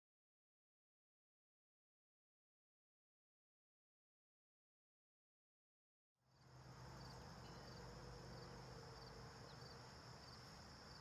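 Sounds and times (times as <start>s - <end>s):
insects chirring: 6.3s - 11.0s
low steady hum: 6.3s - 11.0s.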